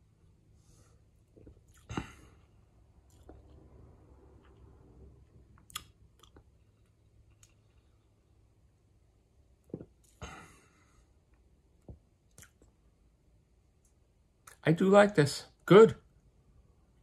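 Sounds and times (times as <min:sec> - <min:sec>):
person swallowing: 0:01.3 - 0:02.4, 0:09.6 - 0:10.6
lip smack: 0:05.6 - 0:06.4.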